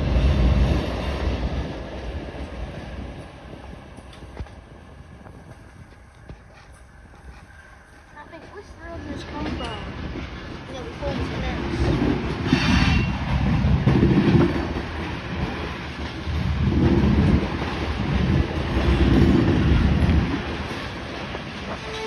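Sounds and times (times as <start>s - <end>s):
wheels clacking over rail joints: 8.2s - 22.0s.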